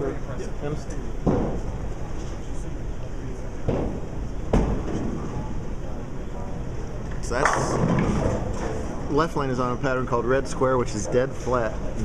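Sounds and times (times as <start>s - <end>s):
bowling balls rolling: 7.4s - 9.1s.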